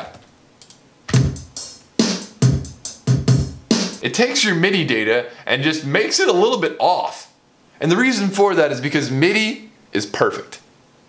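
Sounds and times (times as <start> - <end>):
programmed drum beat: 1.1 - 4.4.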